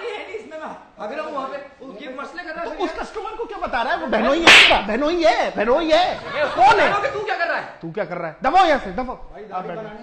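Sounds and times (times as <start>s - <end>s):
men's raised overlapping voices: 1.0s - 7.8s
hand slapping a person: 4.4s - 4.9s.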